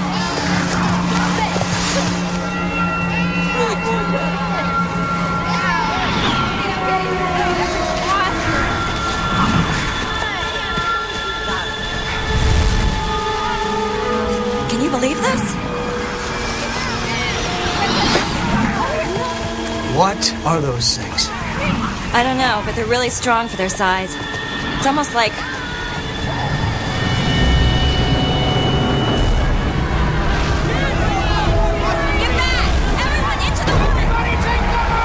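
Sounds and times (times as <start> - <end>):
thin steady high tone: 1.1 - 33.6
strong gusting storm wind: 4.2 - 20.6
tornado wind roaring: 15.4 - 20.3.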